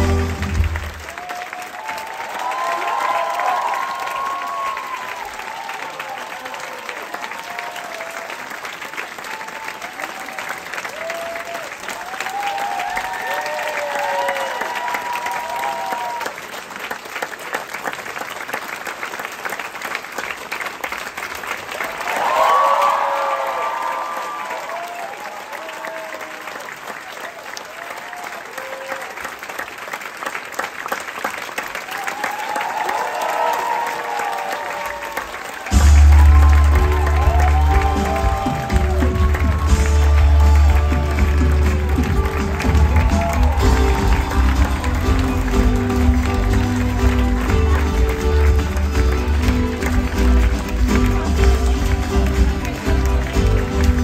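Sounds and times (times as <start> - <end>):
people cheering: 0.0 - 17.9, 21.6 - 54.0
audience applauding: 0.0 - 54.0.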